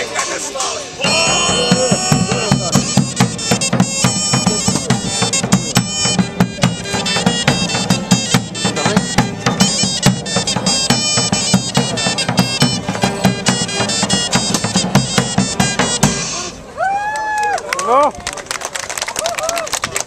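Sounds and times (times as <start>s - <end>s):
reedy wind pipe melody: 0.0s - 16.8s
lute: 0.0s - 17.6s
bass drum beats: 1.0s - 16.3s.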